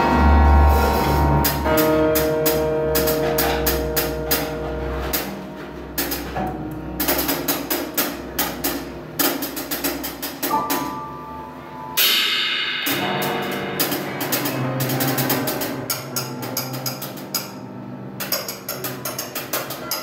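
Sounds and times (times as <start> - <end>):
held piano tones: 0.0 - 20.0
cymbal-like wash: 11.9 - 14.8
drum and cymbal strikes: 12.0 - 16.2.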